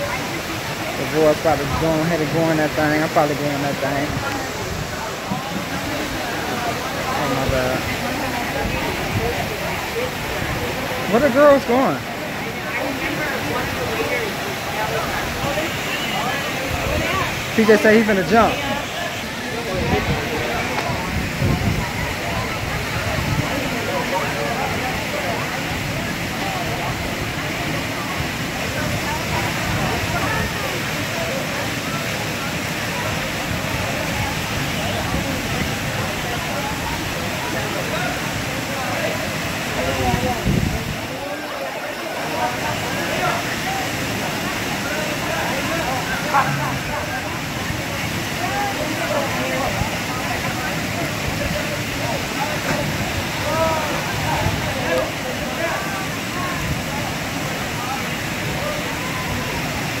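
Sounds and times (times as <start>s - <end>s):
crowd chatter: 0.0s - 60.0s
waterfall rushing into pool: 0.0s - 60.0s.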